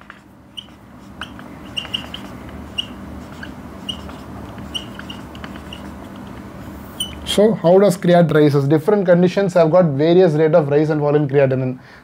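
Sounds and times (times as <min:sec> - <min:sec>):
marker squeaking on whiteboard: 0:00.0 - 0:07.4
faint steady hum: 0:00.0 - 0:12.0
marker tip tapping: 0:00.1 - 0:06.2.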